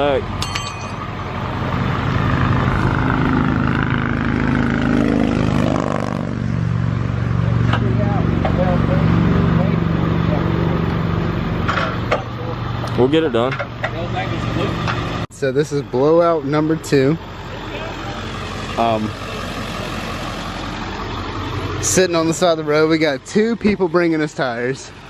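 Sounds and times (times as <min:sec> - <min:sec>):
vehicle passing close by: 0:00.0 - 0:13.4, 0:16.3 - 0:25.0
engine idling: 0:06.6 - 0:25.0.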